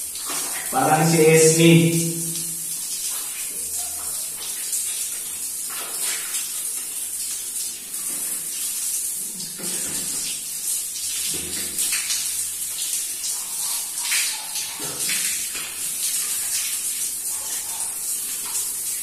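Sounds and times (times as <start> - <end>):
shower water spraying: 0.0 - 19.0.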